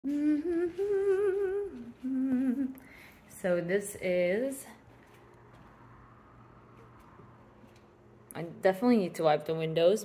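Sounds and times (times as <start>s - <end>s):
woman humming: 0.0s - 2.9s.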